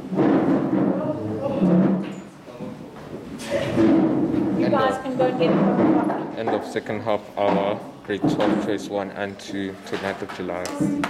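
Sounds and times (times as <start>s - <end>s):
people chattering: 4.5s - 11.0s.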